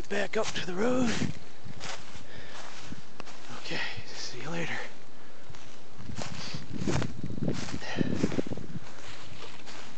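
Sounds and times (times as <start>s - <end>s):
footsteps on dry leaves: 0.0s - 9.9s.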